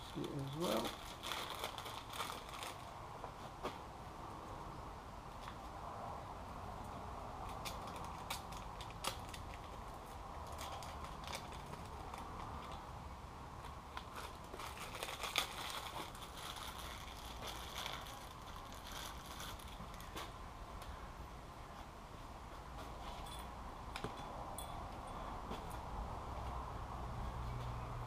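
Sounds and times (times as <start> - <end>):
plastic packaging crinkling: 0.0 - 2.9, 10.4 - 12.8, 14.0 - 20.2.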